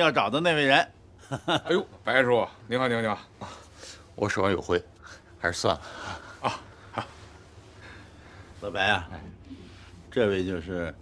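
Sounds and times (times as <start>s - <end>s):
man chuckling: 6.0s - 7.2s.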